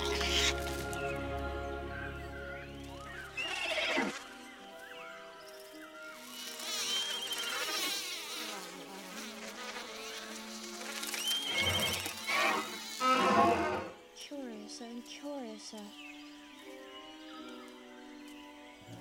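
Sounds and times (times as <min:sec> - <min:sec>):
orchestral film score: 0:00.0 - 0:06.6, 0:10.4 - 0:19.0
buzz of flying insects: 0:00.0 - 0:19.0.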